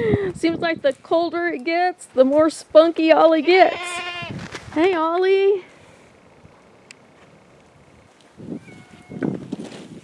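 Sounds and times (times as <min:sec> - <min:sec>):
faint outdoor background: 0:00.0 - 0:10.0
faint pitched call: 0:08.6 - 0:09.3.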